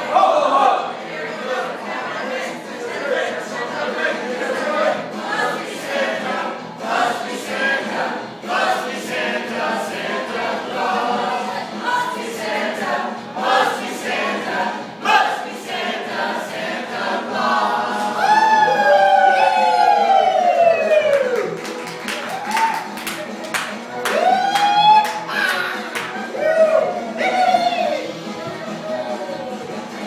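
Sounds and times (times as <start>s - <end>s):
group singing a carol: 0.0s - 18.6s.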